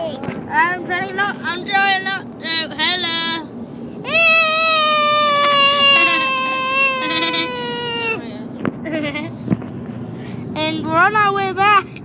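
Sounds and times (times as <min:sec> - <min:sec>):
child wailing: 0:04.1 - 0:08.2.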